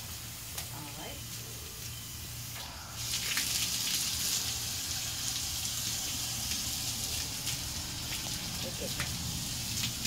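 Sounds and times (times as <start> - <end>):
hose nozzle spraying water: 2.4 - 10.0.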